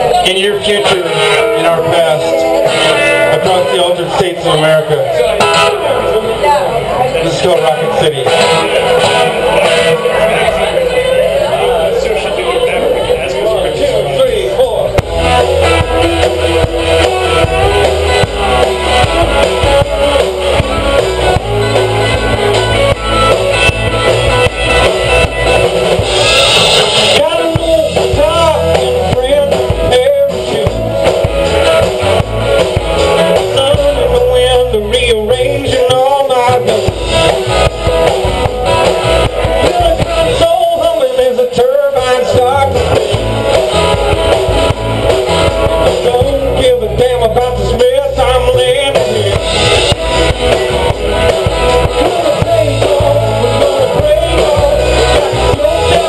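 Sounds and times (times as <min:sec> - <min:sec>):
electric guitar pitch bending: 0:00.0 - 0:13.5, 0:14.8 - 0:56.0
rock band playing: 0:00.0 - 0:56.0.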